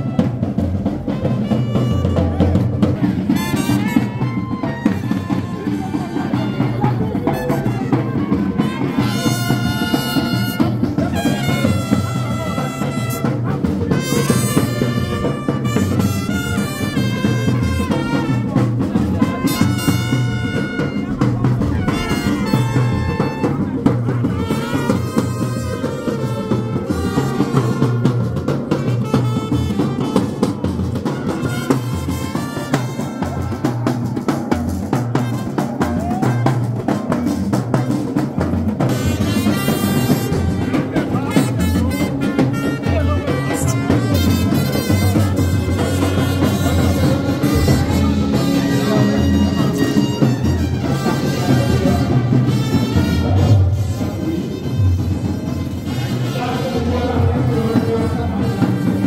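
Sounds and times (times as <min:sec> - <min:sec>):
trumpets playing melody: 0:00.0 - 0:33.7, 0:35.1 - 0:36.9, 0:38.8 - 0:59.0
steady drum beat: 0:00.0 - 0:59.0.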